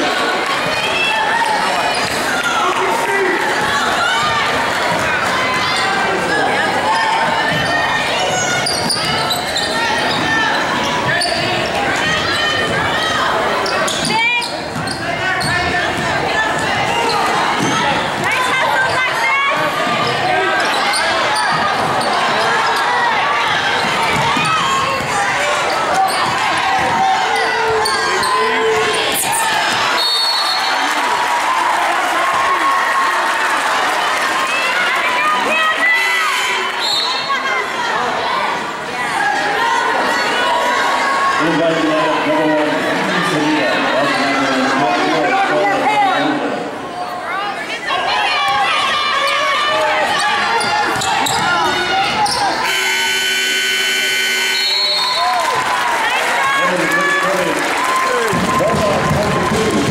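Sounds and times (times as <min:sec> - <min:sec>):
crowd talking and calling out: 0:00.0 - 0:59.9
sneakers squeaking on court: 0:07.5 - 0:12.9, 0:13.6 - 0:16.1, 0:20.6 - 0:26.4, 0:50.1 - 0:53.1
referee's whistle: 0:30.0 - 0:30.8, 0:36.0 - 0:37.4, 0:52.3 - 0:55.4
scoreboard horn blast: 0:52.6 - 0:55.2.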